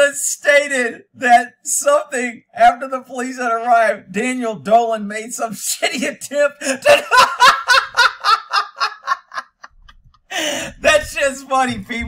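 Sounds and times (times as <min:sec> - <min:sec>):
man laughing: 0:06.6 - 0:11.0.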